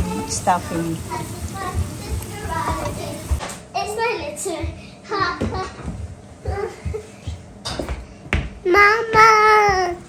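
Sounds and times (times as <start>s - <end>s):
children chattering: 0.0s - 3.4s.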